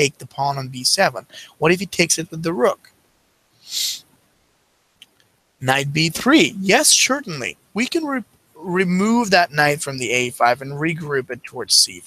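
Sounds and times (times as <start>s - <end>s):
breath into microphone: 1.3s - 1.6s.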